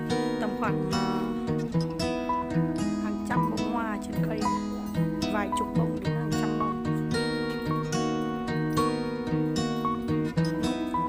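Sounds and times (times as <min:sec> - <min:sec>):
plucked acoustic guitar: 0:00.0 - 0:11.0.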